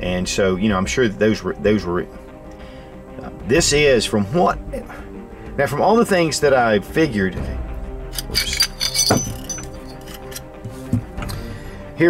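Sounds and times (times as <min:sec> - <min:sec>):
background music: 0:00.0 - 0:12.0
metal parts clinking on mat: 0:08.1 - 0:10.6.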